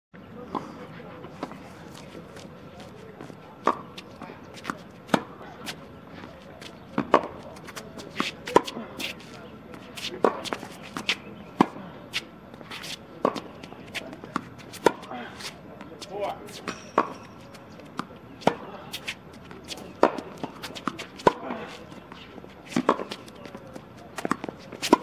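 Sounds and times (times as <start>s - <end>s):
tennis balls struck and bouncing: 1.3s - 25.0s.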